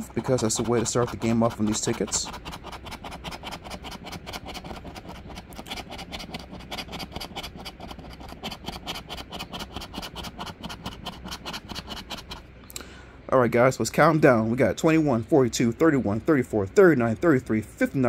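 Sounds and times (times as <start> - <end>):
coin scratching lottery ticket: 0.0 - 12.4.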